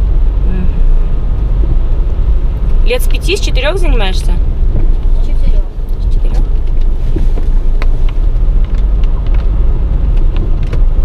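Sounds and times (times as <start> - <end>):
car engine and tyres rumbling: 0.0 - 11.0.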